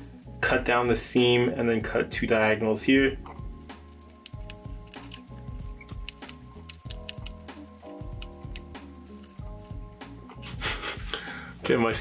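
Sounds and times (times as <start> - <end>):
background music: 0.0 - 12.0
scissors snipping fabric: 4.1 - 9.8.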